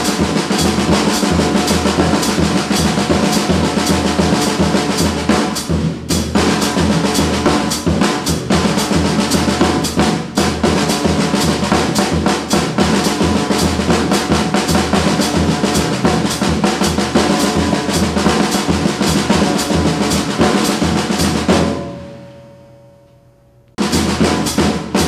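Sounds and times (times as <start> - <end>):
drum kit played fast: 0.0 - 22.3, 23.8 - 25.0
cymbal wash: 0.0 - 25.0.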